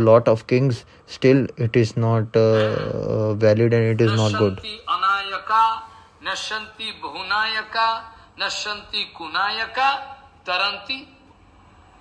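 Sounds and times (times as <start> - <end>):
person talking: 1.5 - 7.8.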